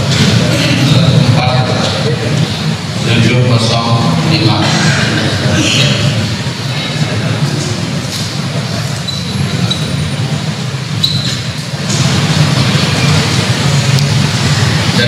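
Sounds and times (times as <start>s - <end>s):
marker squeaking on whiteboard: 9.0s - 10.0s, 11.0s - 11.6s.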